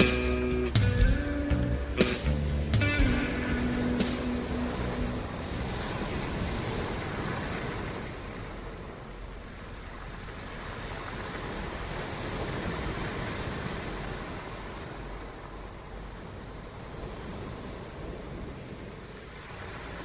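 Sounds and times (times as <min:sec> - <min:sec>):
held musical note: 0:00.0 - 0:05.8
rushing surf-like noise: 0:00.0 - 0:20.0.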